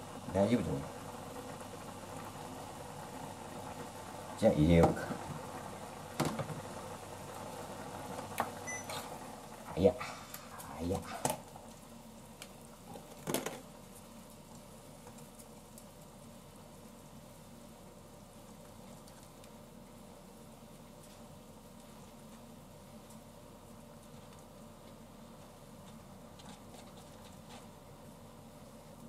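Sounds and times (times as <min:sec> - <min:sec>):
faint steady simmer: 0:00.0 - 0:29.0.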